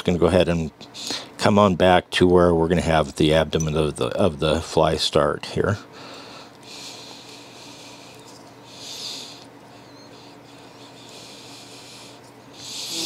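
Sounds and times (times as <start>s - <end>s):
low room hum: 0.0s - 13.0s
faint breathing: 0.9s - 1.4s, 5.8s - 13.0s.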